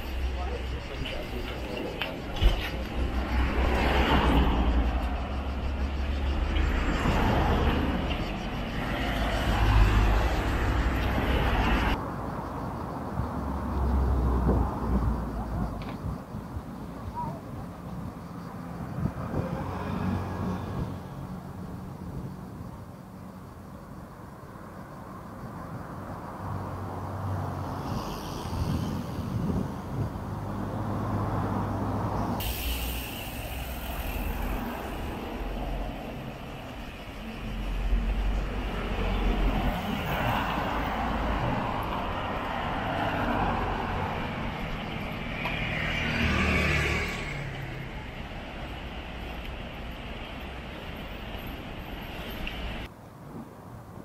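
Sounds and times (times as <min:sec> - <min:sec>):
cars passing: 0:00.0 - 0:52.9.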